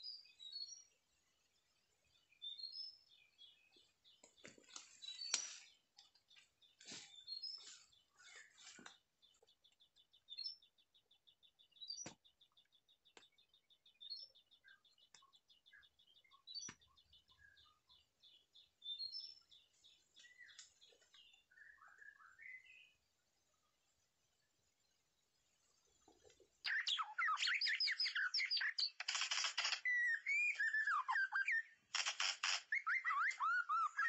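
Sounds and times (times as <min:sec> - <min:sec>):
bird chirps: 0:00.0 - 0:34.0
sharp clicks: 0:28.6 - 0:30.0, 0:31.9 - 0:33.4.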